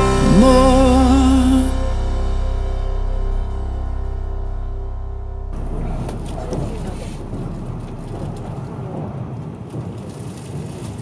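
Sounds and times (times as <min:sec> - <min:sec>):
low rumble: 0:00.0 - 0:10.4
steady rushing noise: 0:02.1 - 0:10.4.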